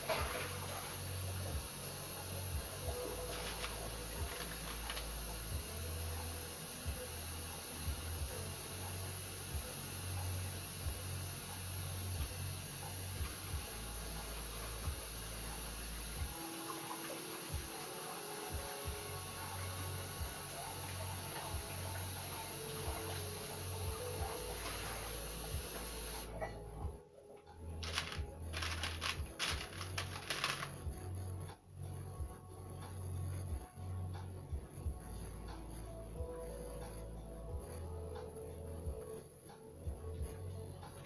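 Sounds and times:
plastic beads clicking and rattling: 27.8 - 30.8.

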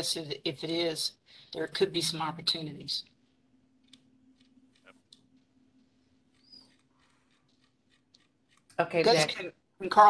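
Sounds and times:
low steady hum: 0.2 - 6.7
faint high squeak: 6.4 - 6.8.

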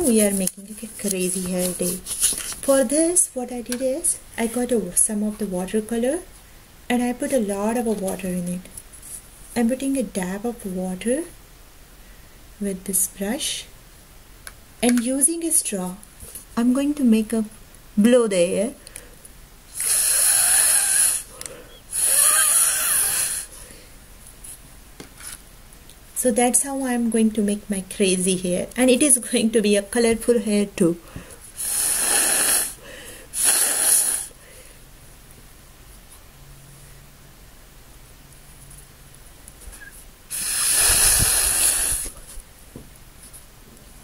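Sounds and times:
breath blown through straw: 19.7 - 23.6, 31.6 - 34.4, 40.3 - 42.2.

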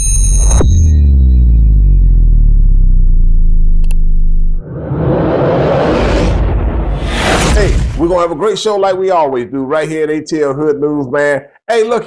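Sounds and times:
deep electronic drone: 0.2 - 7.1
short click: 3.8 - 4.0.

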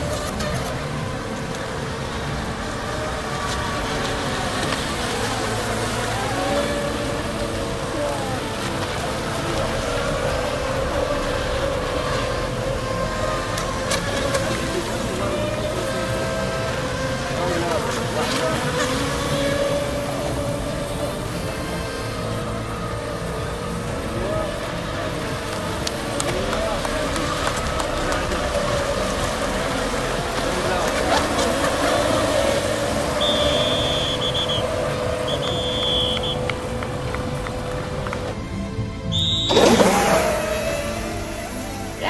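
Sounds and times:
people's voices: 0.0 - 42.0
rc boat motors whining: 0.0 - 42.0.

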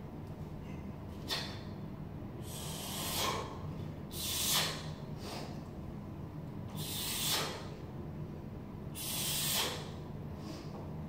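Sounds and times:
person exhaling forcefully: 1.2 - 1.7, 2.4 - 5.6, 6.8 - 7.7, 9.0 - 10.0.

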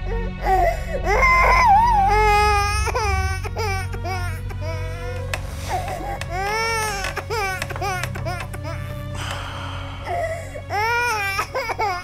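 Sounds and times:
baby crying: 0.0 - 12.0.

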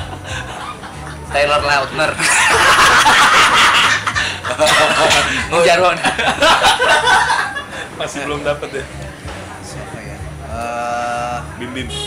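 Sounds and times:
men laughing loudly: 0.0 - 8.5.

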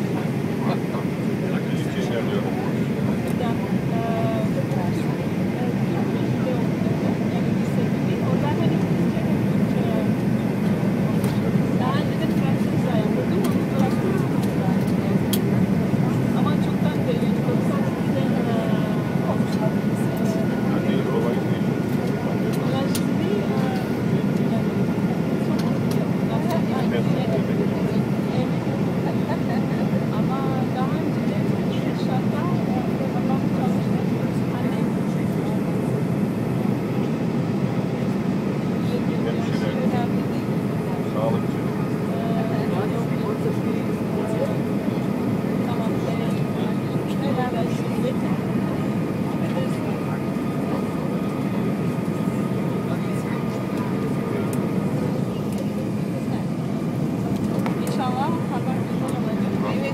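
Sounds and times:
airplane cabin engine rumble: 0.0 - 59.9
faint passenger voices: 0.0 - 59.9.

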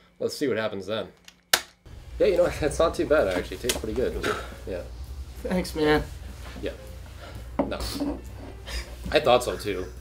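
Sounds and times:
steady low hum: 1.9 - 9.0.

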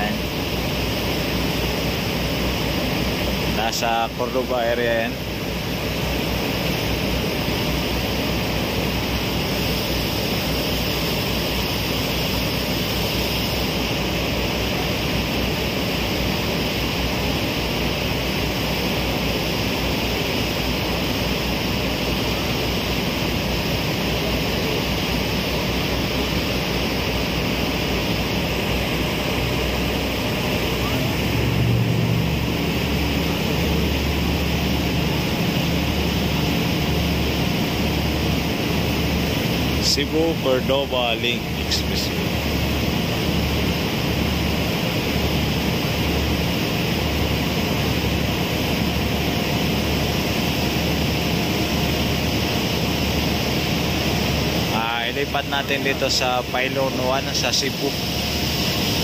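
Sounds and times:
ferry engine hum: 0.0 - 59.0.

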